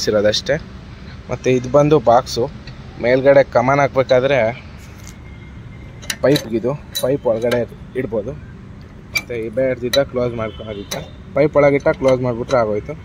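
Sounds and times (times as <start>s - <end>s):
metal latch hook clinking: 6.0s - 8.2s, 8.8s - 13.0s.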